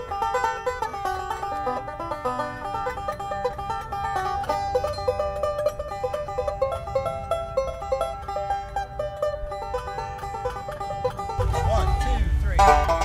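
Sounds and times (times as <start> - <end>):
banjo picking bluegrass: 0.0 - 13.0.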